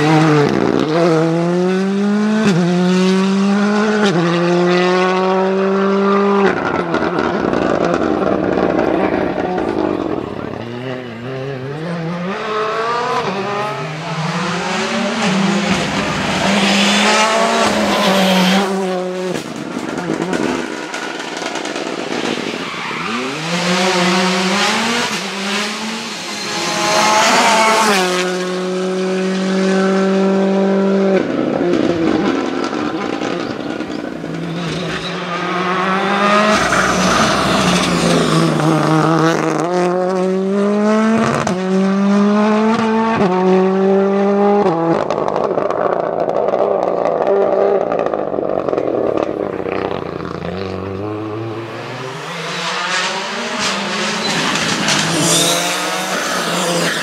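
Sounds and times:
rally car engines at full throttle: 0.0 - 57.0.

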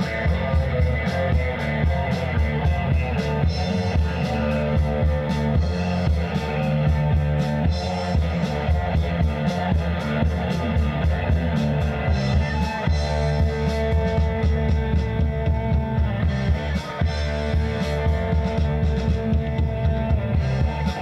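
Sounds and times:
bass guitar: 0.0 - 21.0
drum kit beat: 0.0 - 21.0
electric guitars: 0.0 - 21.0.

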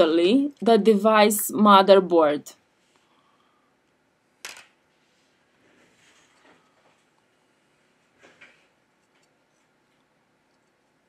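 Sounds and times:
soft rustle: 4.9 - 10.8.

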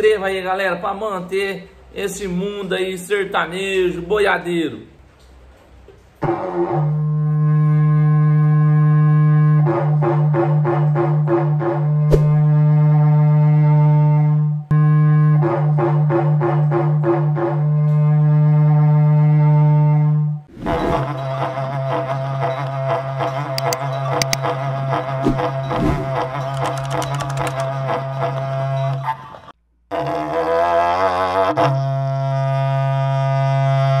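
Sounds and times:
ox-horn trumpet low note: 6.2 - 9.7, 12.4 - 15.5.

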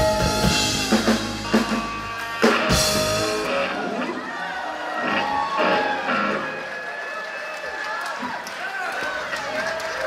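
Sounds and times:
amplified electric guitar: 0.0 - 4.3.

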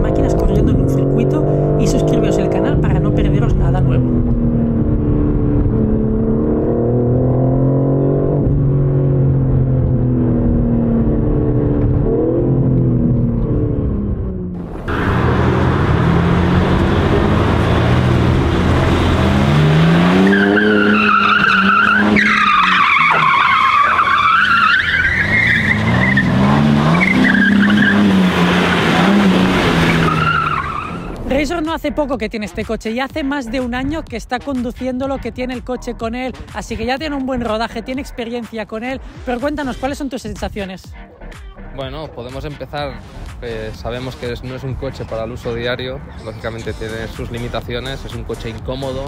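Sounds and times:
car engine accelerating: 0.0 - 31.7
engine revving: 0.0 - 32.0
tyres squealing: 19.4 - 31.3.

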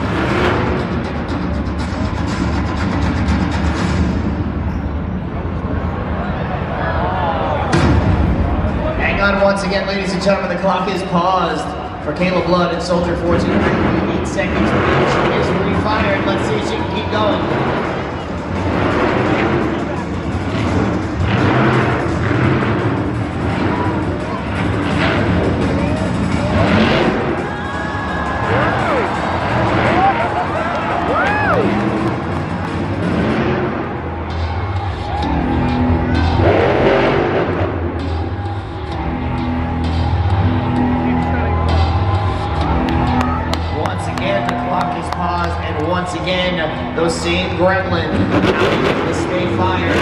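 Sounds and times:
loud music over loudspeakers: 0.0 - 4.7, 7.5 - 50.0
monster truck engine running: 0.0 - 50.0.

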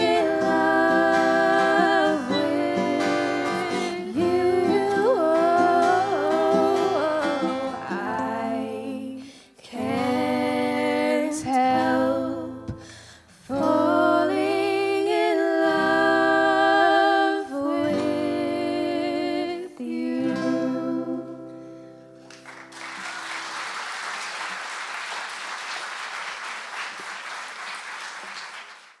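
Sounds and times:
strummed acoustic guitar: 0.0 - 8.8
women singing: 0.0 - 21.6
ukulele: 0.0 - 22.6
audience applause: 22.2 - 29.0.

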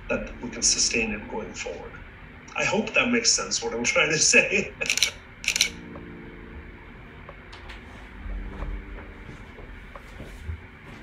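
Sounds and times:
low hum of held tones: 0.0 - 11.0.

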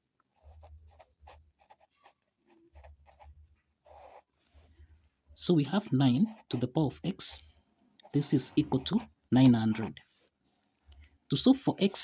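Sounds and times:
pen scratching on paper: 0.3 - 4.7, 6.0 - 7.4, 8.0 - 10.4.

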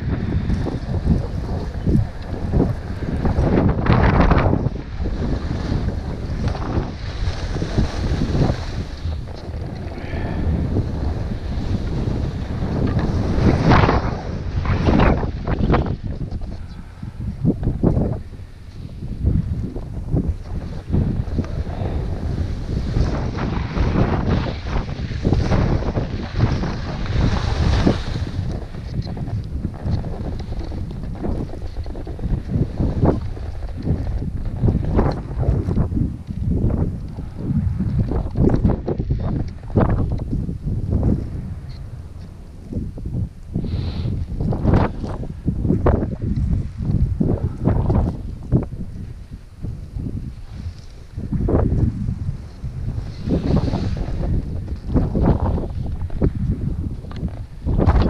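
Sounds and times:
wind buffeting microphone: 0.0 - 58.0
skis scraping on packed snow: 4.8 - 9.8, 20.6 - 35.6, 52.0 - 56.2.

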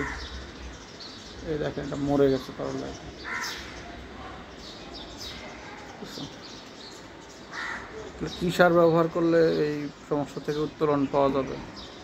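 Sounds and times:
crow cawing: 0.0 - 0.4, 3.2 - 4.0, 7.5 - 8.1.

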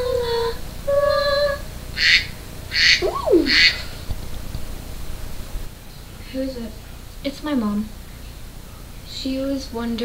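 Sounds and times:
girls shrieking: 3.0 - 3.9
falling vocal swoop: 3.0 - 4.0.

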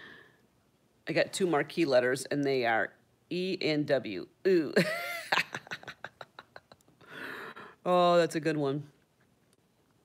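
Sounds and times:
woman laughing: 4.8 - 7.0.

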